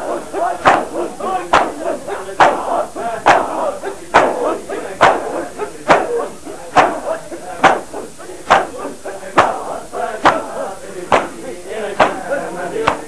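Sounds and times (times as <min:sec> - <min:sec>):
palms slapping bare chests: 0:00.0 - 0:11.4, 0:12.0 - 0:13.0
crowd of men chanting: 0:00.0 - 0:13.0.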